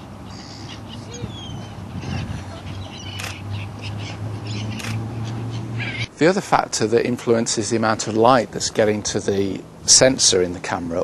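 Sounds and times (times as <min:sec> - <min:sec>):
seagulls calling: 0:00.0 - 0:06.2.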